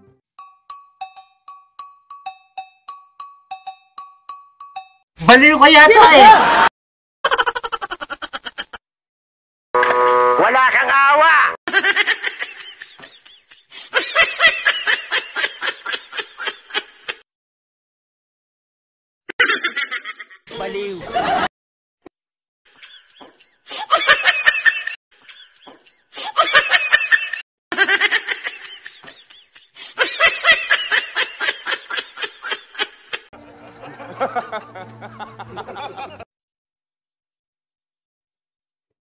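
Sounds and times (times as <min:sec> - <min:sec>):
rhythmic laughter: 0:26.2 - 0:36.3.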